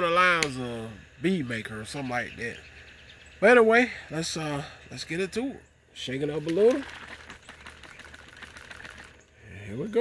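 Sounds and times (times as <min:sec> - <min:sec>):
liquid sloshing in spray bottle: 0:06.4 - 0:09.2.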